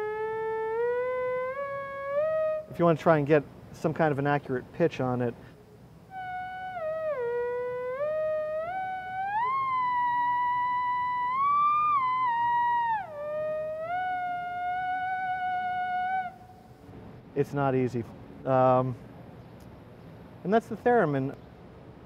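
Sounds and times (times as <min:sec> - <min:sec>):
theremin playing held notes: 0:00.0 - 0:03.0, 0:06.1 - 0:16.8.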